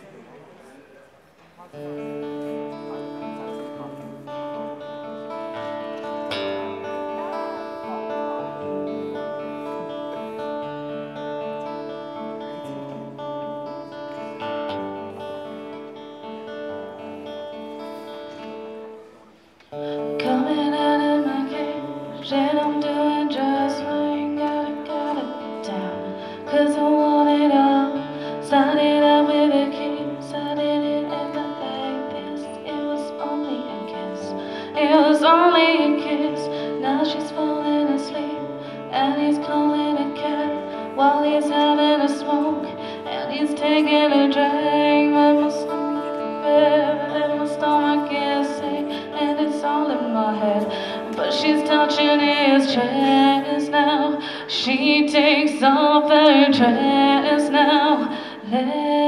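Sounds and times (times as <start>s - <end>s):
acoustic guitar chords: 1.7s - 59.0s
woman singing: 20.0s - 59.0s.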